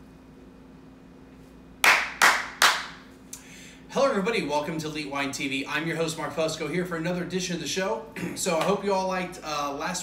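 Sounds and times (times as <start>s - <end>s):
faint steady hum: 0.0s - 10.0s
hand claps with room echo: 1.8s - 3.1s, 8.6s - 8.8s.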